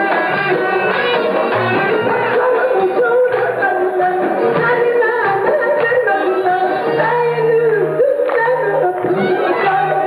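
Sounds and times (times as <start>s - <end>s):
live band with accordion: 0.0s - 10.0s
woman singing: 0.0s - 10.0s.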